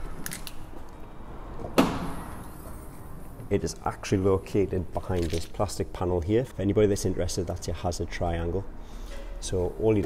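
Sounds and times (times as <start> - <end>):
car lid clunk: 1.6 - 2.4.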